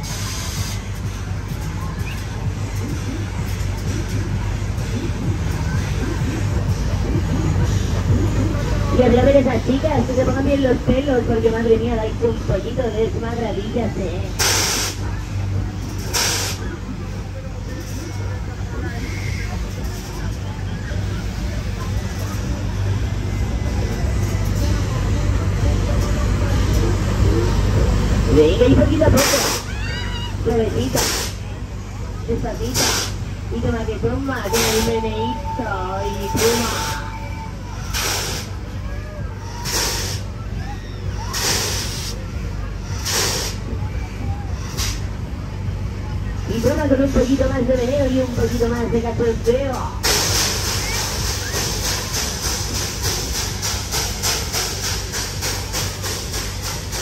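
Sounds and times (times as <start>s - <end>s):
air hiss bursts: 0.0s - 0.9s, 14.4s - 15.1s, 16.0s - 16.7s, 31.0s - 31.4s, 32.7s - 33.2s, 37.8s - 38.6s, 39.6s - 40.3s, 41.3s - 42.2s, 43.0s - 43.6s, 44.7s - 45.1s, 50.0s - 57.0s
low machinery hum: 0.0s - 57.0s
air hiss: 14.4s - 15.1s, 16.0s - 16.7s, 31.0s - 31.4s, 32.7s - 33.2s, 37.8s - 38.6s, 39.5s - 40.4s, 41.3s - 42.2s, 43.0s - 43.6s.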